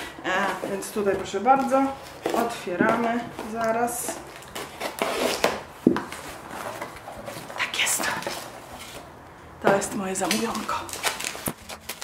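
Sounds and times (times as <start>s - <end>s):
cardboard scraping and rustling: 0.3s - 10.0s.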